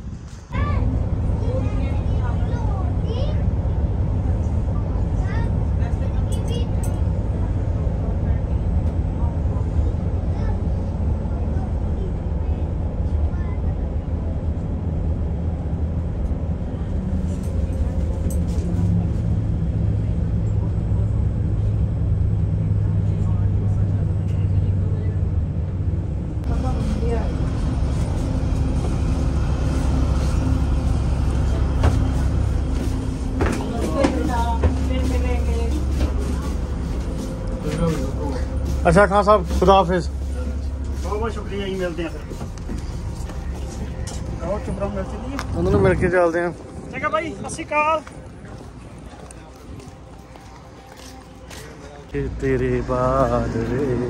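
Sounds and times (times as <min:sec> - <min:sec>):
bus engine rumbling: 0:00.0 - 0:54.0.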